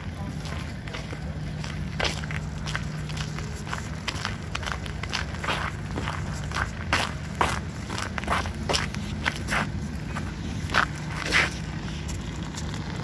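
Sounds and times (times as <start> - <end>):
footsteps crunching on snow: 0.0 - 13.0
low steady hum: 0.0 - 13.0.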